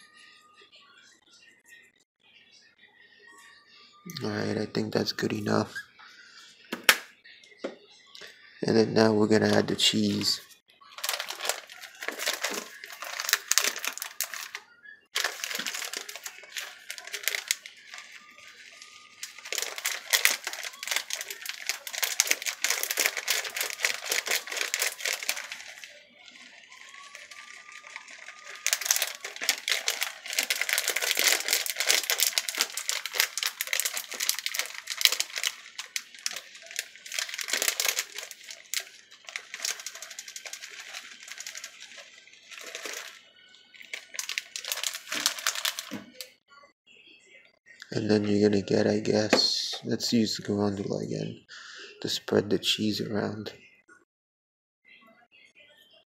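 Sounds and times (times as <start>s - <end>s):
plastic bag crinkling: 9.4s - 46.4s.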